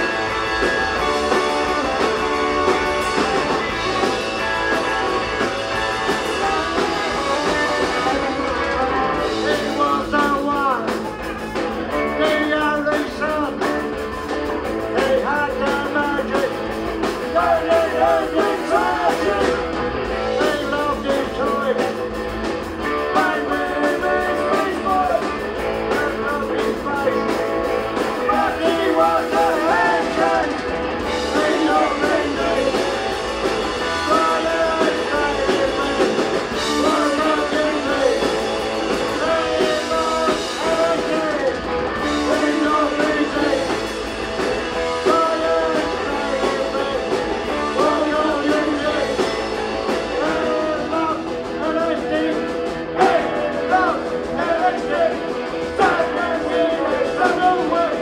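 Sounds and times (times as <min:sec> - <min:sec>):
punk rock band playing live: 0:00.0 - 0:58.0
man singing into a microphone: 0:09.0 - 0:11.2, 0:12.0 - 0:13.8, 0:14.8 - 0:16.6, 0:17.2 - 0:22.0, 0:22.8 - 0:27.4, 0:28.2 - 0:33.2, 0:33.8 - 0:44.0, 0:44.7 - 0:58.0.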